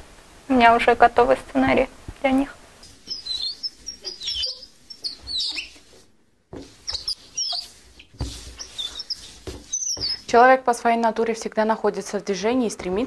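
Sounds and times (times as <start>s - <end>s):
birds chirping: 2.9s - 5.8s, 6.8s - 10.4s.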